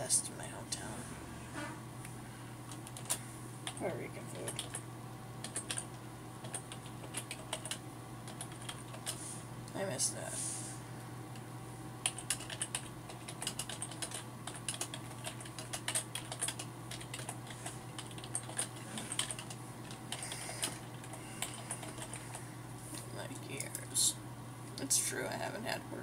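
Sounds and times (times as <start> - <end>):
typing on computer keyboard: 2.7 - 3.8, 4.4 - 4.8, 5.4 - 9.2, 12.0 - 22.4.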